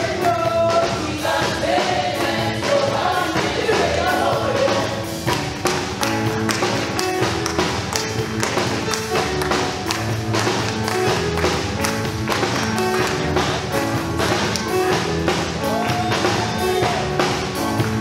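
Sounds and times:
held keyboard and bass notes: 0.0s - 18.0s.

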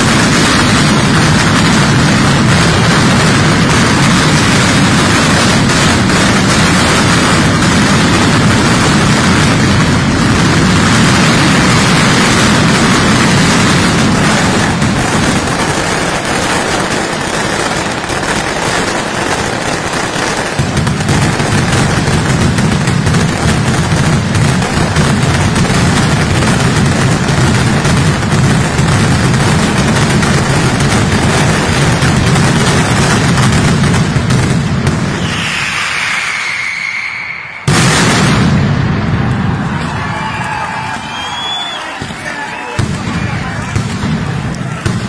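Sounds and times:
firecrackers exploding in continuous rumble: 0.0s - 45.0s
falling whistle: 35.2s - 37.7s, 40.2s - 42.7s.

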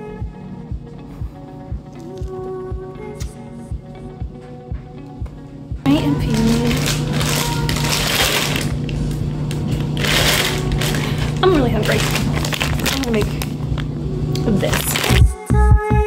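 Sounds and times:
low hum: 0.0s - 16.0s
plastic packaging crinkling: 5.9s - 15.3s.

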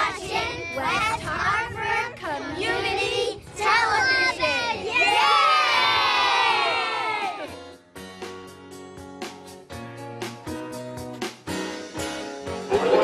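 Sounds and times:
young children shouting: 4.5s - 7.6s
children cheering: 5.1s - 7.6s, 12.7s - 13.0s.

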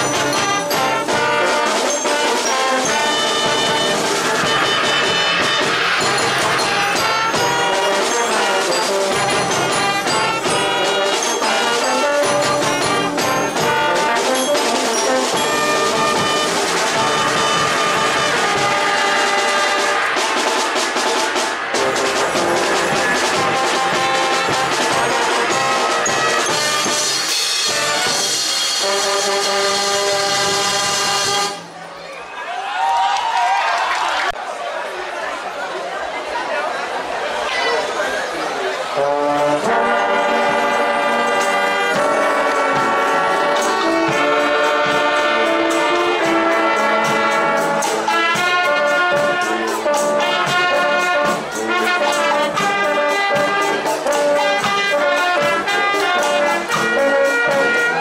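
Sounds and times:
brass band playing: 0.0s - 31.9s, 38.8s - 58.0s.

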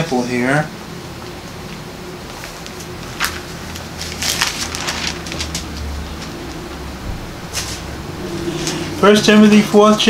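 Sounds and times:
thin pages rustling: 2.4s - 6.4s.

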